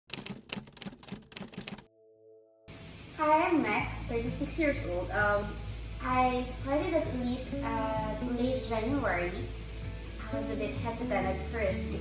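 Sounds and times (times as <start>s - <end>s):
typewriter key clicks: 0.1s - 1.9s.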